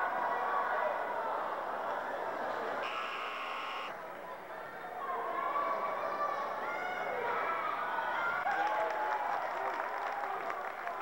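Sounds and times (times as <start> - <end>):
crowd chatter: 0.0 - 8.5
scoreboard horn buzzing: 2.8 - 4.0.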